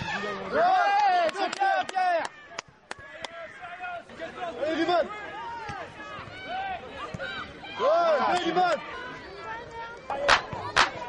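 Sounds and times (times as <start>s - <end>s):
voices shouting: 0.0s - 11.0s.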